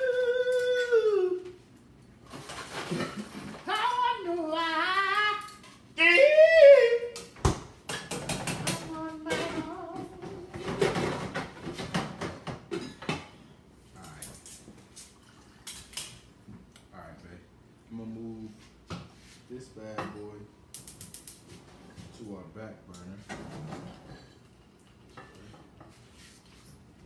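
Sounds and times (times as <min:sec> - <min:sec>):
person singing wavering notes: 0:00.0 - 0:01.6
kitchenware clicking and clattering: 0:02.3 - 0:03.7, 0:07.8 - 0:13.4, 0:23.0 - 0:26.0.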